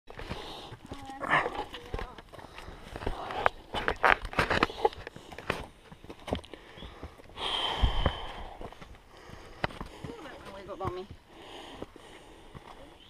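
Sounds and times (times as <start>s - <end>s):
footsteps on rocky trail: 0.1s - 13.0s.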